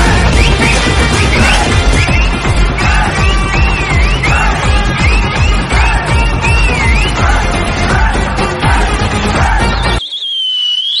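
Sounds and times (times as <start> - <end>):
shrill whistle: 0.0 - 7.2, 9.7 - 11.0
upbeat background music: 0.0 - 10.1.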